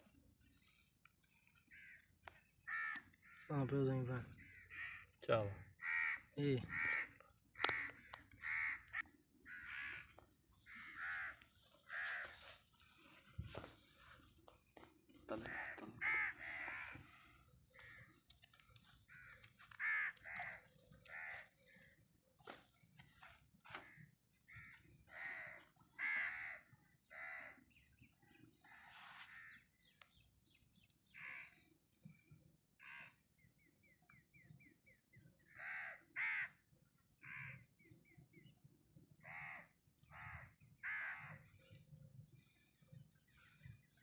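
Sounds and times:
crows cawing: 1.3s - 13.8s, 14.8s - 27.8s, 28.6s - 30.1s, 31.0s - 31.8s, 32.8s - 33.3s, 35.4s - 37.8s, 39.2s - 42.7s.

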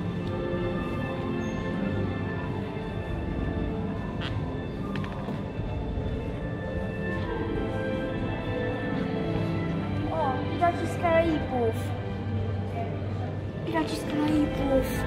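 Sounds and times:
background music with held notes: 0.0s - 15.0s
people talking: 13.7s - 15.0s
voice: 13.7s - 15.0s.

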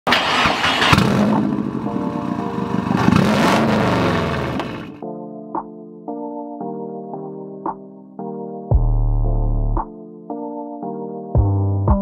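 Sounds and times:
car engine revving: 0.1s - 5.0s
exhaust crack: 0.1s - 5.0s.

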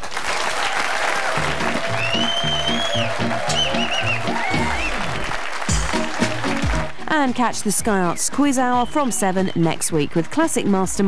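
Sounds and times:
audience applauding: 0.0s - 7.0s
theme music with bass line: 1.4s - 8.0s.

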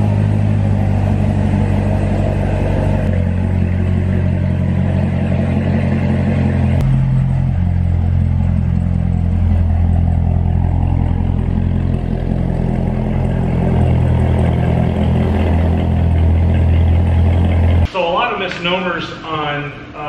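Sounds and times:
car engine running at low revs: 0.0s - 17.9s.

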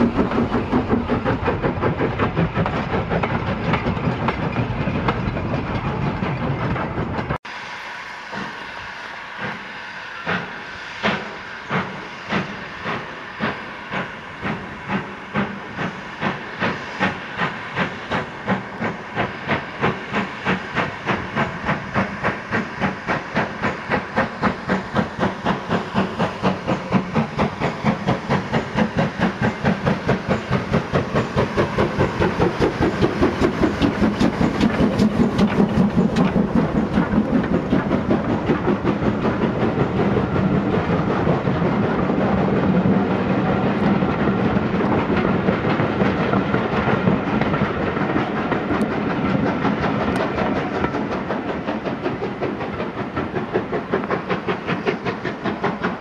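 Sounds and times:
steam locomotive exhaust chuffs: 0.0s - 56.0s.

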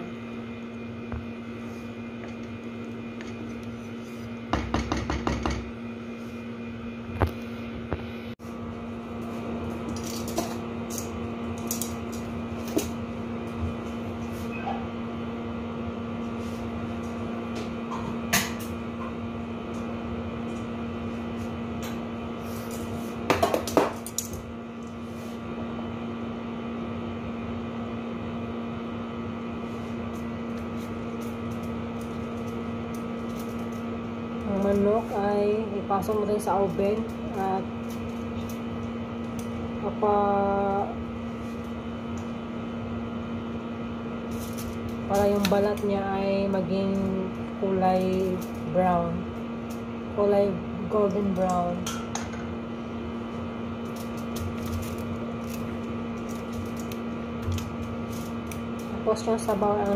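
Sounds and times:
electrical appliance hum: 0.0s - 59.9s.

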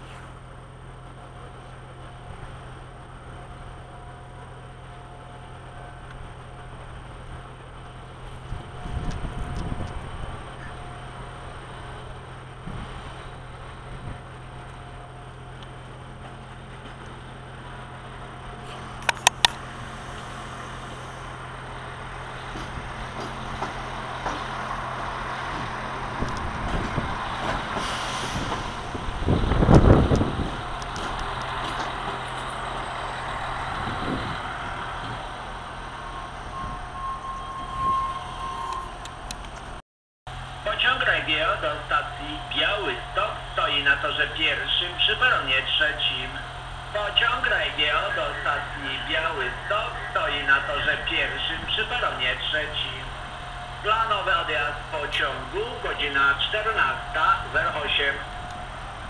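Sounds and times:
diesel railcar engine drone: 0.0s - 59.0s
sharp clicks: 19.0s - 19.6s.

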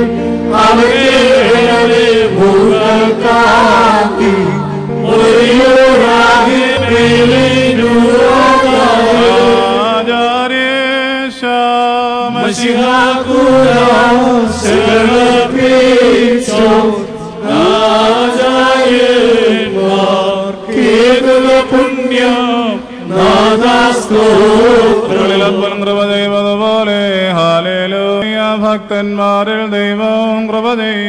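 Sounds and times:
person chanting: 0.0s - 31.0s.

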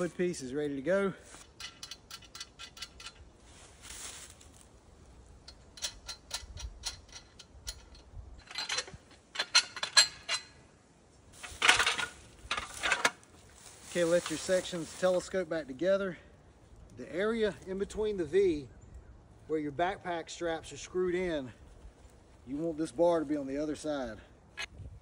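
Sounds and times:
metal frame clinking and rattling: 1.3s - 3.3s, 5.4s - 10.7s, 11.3s - 13.4s.

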